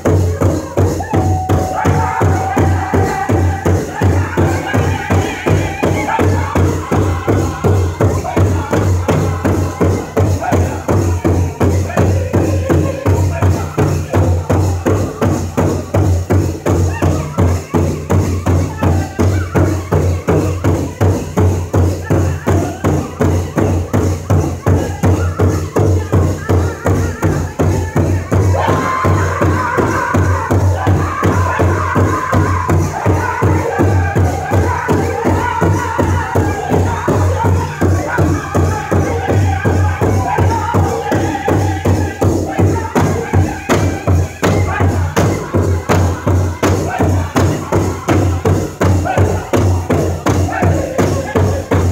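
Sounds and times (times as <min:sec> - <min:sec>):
men singing: 0:00.0 - 0:51.9.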